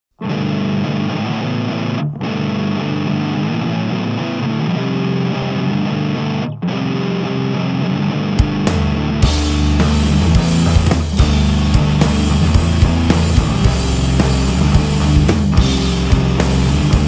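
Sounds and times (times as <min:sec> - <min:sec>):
distorted electric guitar riff: 0:00.1 - 0:17.0.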